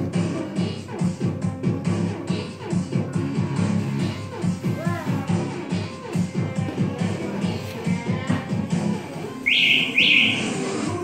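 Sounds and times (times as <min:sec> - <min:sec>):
background music: 0:00.0 - 0:11.0
short rising whistles: 0:09.4 - 0:10.7.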